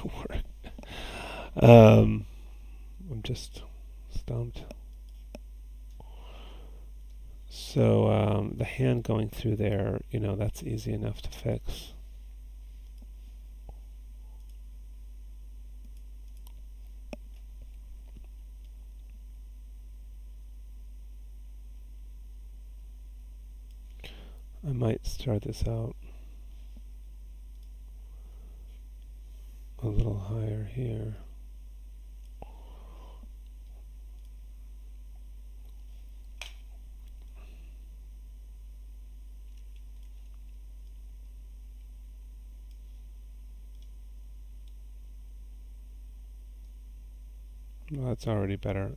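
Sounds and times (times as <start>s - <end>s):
steady low hum: 0.0s - 48.9s
computer mouse click: 15.8s - 17.5s, 43.7s - 43.9s
computer mouse clicks: 15.8s - 19.2s, 27.5s - 27.8s, 33.4s - 34.4s, 43.7s - 44.0s.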